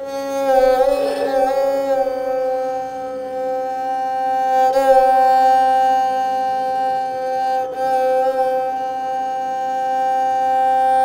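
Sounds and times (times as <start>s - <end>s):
bowed string instrument note: 0.0s - 7.1s.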